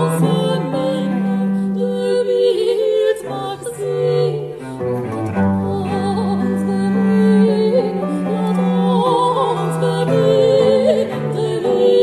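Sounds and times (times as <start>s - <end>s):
bowed strings chamber music: 0.0s - 12.0s.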